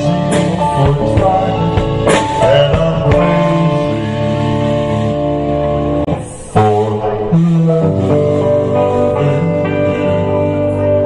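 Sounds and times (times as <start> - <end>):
electric guitar chords: 0.0 - 11.0
live band playing: 0.0 - 11.0.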